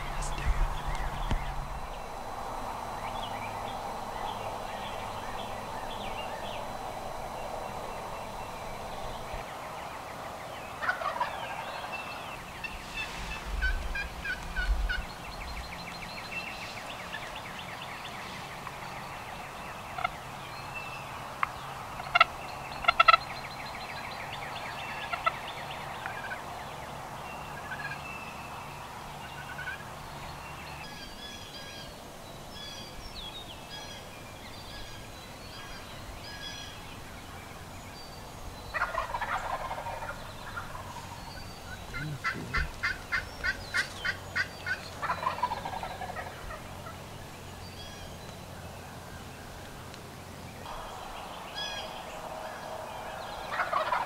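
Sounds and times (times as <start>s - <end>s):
songbird chirps: 0.0s - 54.0s
turkey gobbling: 10.8s - 11.9s, 13.6s - 15.0s, 20.0s - 20.2s, 22.0s - 23.2s, 25.0s - 25.4s, 29.3s - 29.8s, 38.7s - 41.1s, 41.7s - 47.0s, 51.6s - 54.0s
hen turkey yelps: 38.7s - 40.9s, 53.5s - 54.0s.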